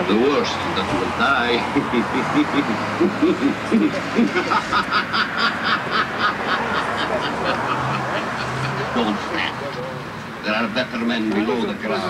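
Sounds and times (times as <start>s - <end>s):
rapid cackling laugh: 1.4s - 10.0s.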